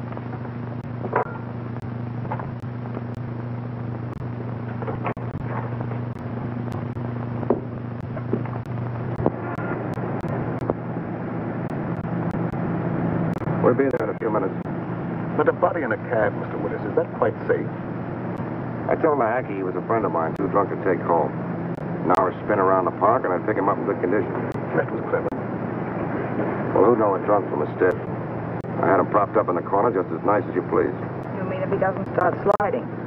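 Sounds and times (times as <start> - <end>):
film soundtrack hum and hiss: 0.0 - 33.0
faint voices: 13.5 - 14.6, 15.4 - 17.8, 18.9 - 21.3, 22.0 - 25.4, 26.7 - 28.1, 28.7 - 32.9.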